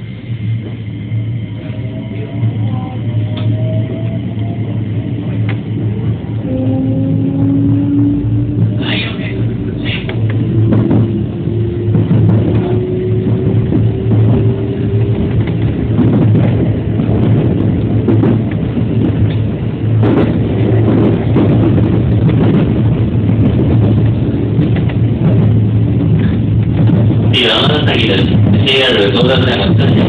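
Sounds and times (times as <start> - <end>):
train running gear hum: 0.0 - 30.0.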